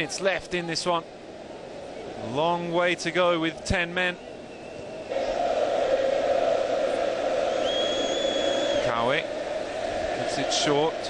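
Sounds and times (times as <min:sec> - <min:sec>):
stadium crowd chanting: 0:05.0 - 0:11.0
long high-pitched whistle: 0:07.4 - 0:08.9.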